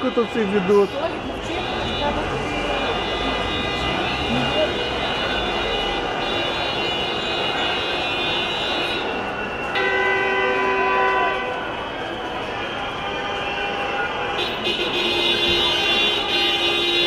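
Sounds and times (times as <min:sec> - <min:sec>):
car horn blaring: 0:00.0 - 0:11.7, 0:13.2 - 0:17.0
crowd and street noise: 0:00.0 - 0:17.0.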